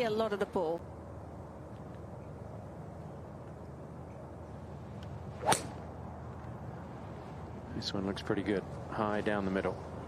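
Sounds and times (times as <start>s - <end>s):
low outdoor background: 0.0s - 10.0s
clubhead striking golf ball: 5.4s - 5.8s
golf club swish: 5.4s - 5.8s.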